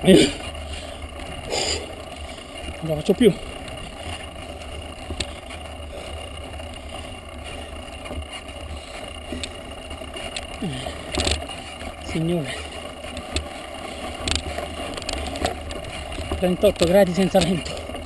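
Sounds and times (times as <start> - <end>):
bike clicks and rattles: 0.0 - 18.0
tyres rumbling on dirt: 0.0 - 18.0
wind: 0.0 - 18.0.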